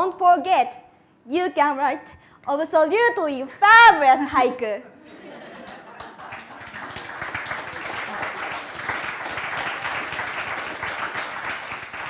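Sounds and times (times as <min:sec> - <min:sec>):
audience applauding: 0:05.6 - 0:12.0.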